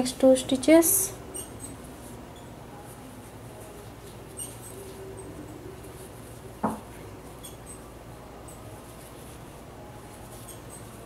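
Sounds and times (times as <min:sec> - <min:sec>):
yarn rustling with crochet hook: 0:08.4 - 0:11.0.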